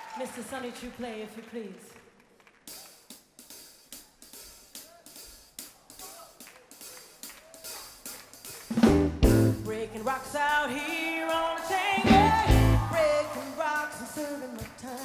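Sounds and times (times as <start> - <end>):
drum kit groove: 2.6 - 15.0
band playing with heavy bass: 3.9 - 15.0.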